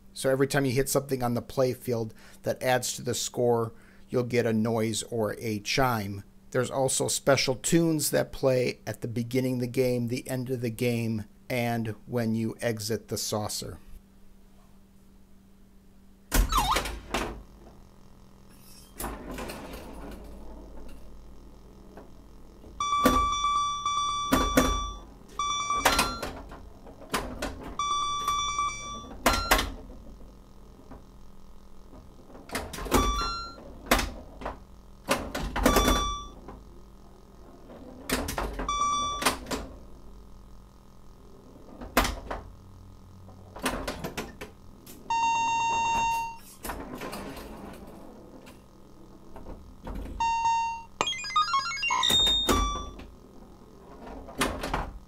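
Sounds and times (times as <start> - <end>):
pinball flippers and solenoids clicking: 21.9 - 31.0, 31.9 - 36.6, 37.5 - 40.0, 43.3 - 48.6, 49.4 - 53.1
electronic scoring bleeps: 22.8 - 26.2, 27.8 - 29.6, 50.2 - 53.0.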